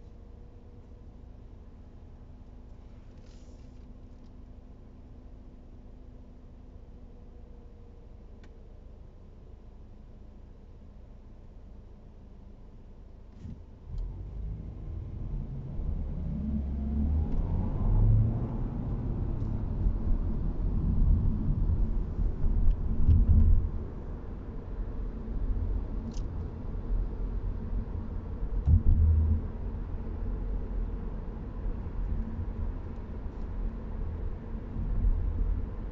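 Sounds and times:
road rumble: 0.0 - 35.9
car engine accelerating: 13.4 - 23.9
low thumps: 28.6 - 29.7.

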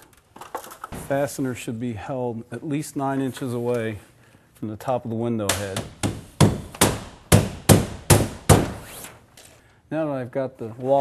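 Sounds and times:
hammer striking nails: 5.5 - 8.9.

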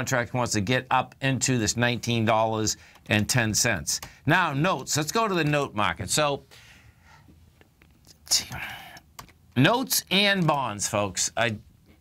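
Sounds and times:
man whispering: 8.0 - 9.2.

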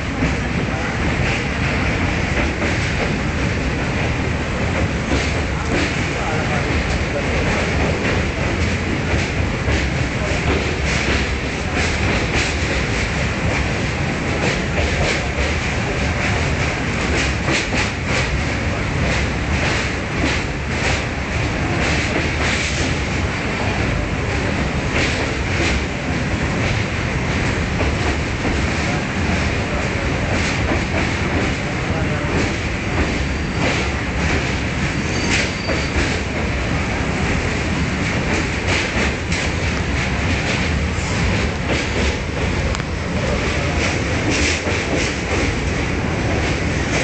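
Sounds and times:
train rumbling: 0.0 - 47.0
train wheels clacking: 0.0 - 47.0.

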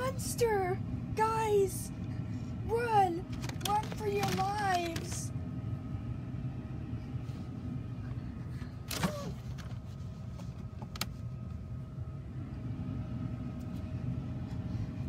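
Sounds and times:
faint steady hum: 0.0 - 15.0
low background rumble: 0.0 - 15.0.

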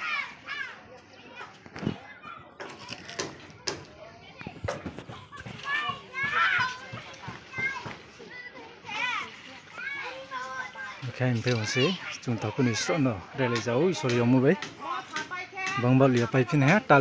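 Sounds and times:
children calling and chattering: 0.0 - 17.0.

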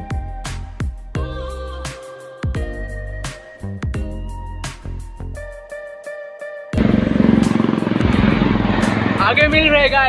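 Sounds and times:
passing vehicles rumbling: 6.8 - 10.0.

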